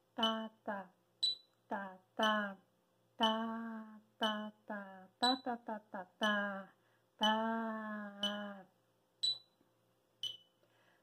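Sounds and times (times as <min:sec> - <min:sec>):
person chanting syllables: 0:00.0 - 0:01.0, 0:01.7 - 0:08.8
metronome clicking: 0:00.2 - 0:00.6, 0:01.2 - 0:01.6, 0:03.2 - 0:05.5, 0:07.2 - 0:08.6, 0:09.2 - 0:09.6, 0:10.2 - 0:10.5.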